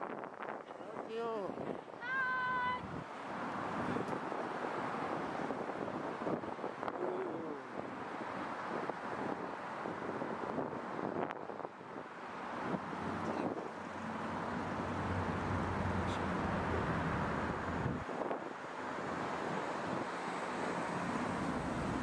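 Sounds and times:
wind on microphone: 0.0 - 13.8, 15.4 - 18.6
passing traffic: 0.0 - 22.0.

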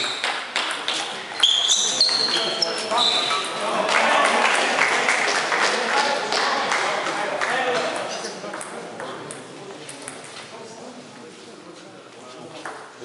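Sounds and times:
voices in a hall: 0.0 - 13.0.

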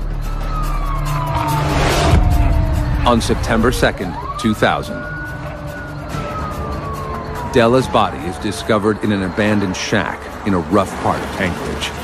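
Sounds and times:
siren-like tone gliding down: 0.1 - 9.8.

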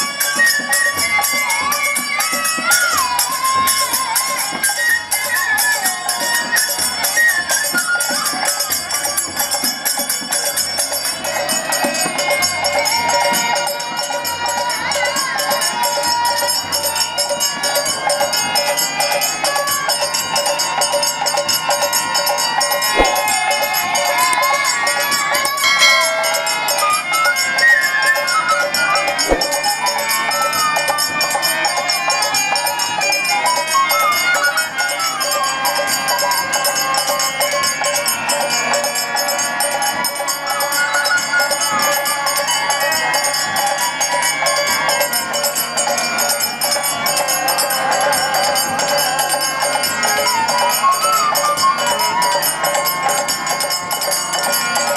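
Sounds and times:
bamboo flute melody: 0.0 - 10.1, 20.7 - 38.0, 40.1 - 44.8, 49.0 - 53.9
hand drum: 0.0 - 31.9
small hand cymbals ringing: 0.0 - 54.9
metal percussion jingling: 0.1 - 33.6, 42.3 - 54.9
harmonium chords: 20.6 - 36.0
sharp strike: 23.0 - 23.3, 29.3 - 29.6.

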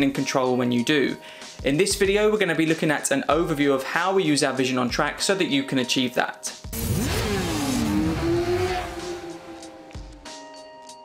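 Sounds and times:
racing motorcycle engine passing: 6.8 - 10.2.

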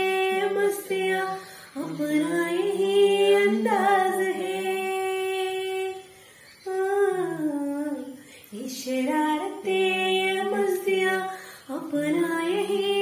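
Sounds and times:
woman singing unaccompanied: 0.0 - 13.0.

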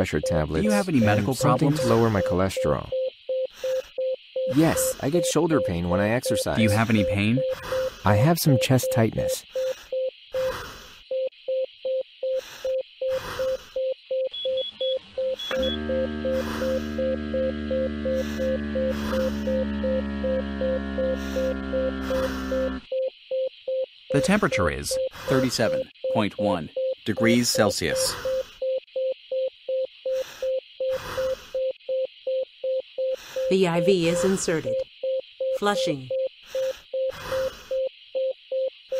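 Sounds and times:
quick higher beeps: 0.0 - 3.0, 4.4 - 9.3
heart monitor beeping fast: 0.0 - 38.8
steady low drone: 15.5 - 22.8.

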